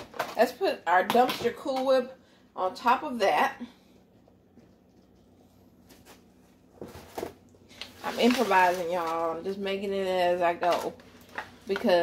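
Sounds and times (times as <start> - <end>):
spatula scraping foil pan: 7.9 - 9.2.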